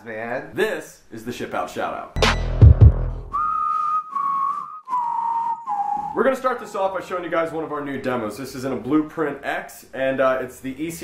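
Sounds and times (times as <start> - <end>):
whistled tune: 2.2 - 6.9.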